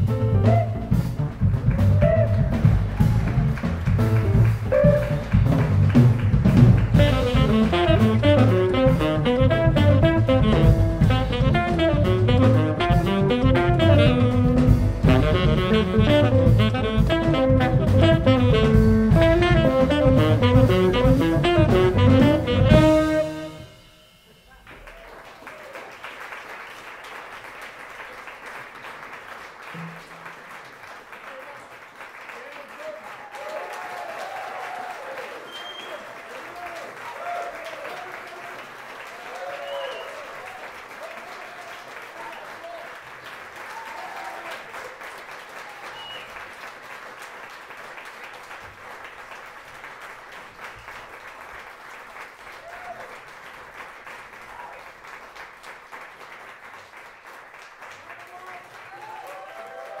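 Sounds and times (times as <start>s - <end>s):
audience applauding: 0.4s - 60.0s.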